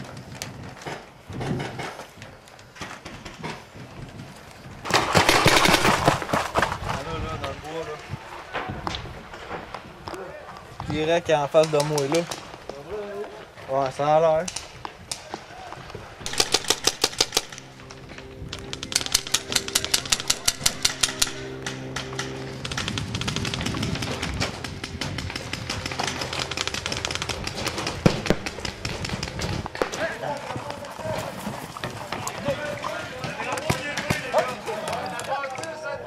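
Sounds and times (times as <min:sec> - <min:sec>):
paintball markers firing: 0:04.9 - 0:06.6, 0:16.3 - 0:17.7, 0:18.7 - 0:30.9
background music: 0:16.3 - 0:30.3.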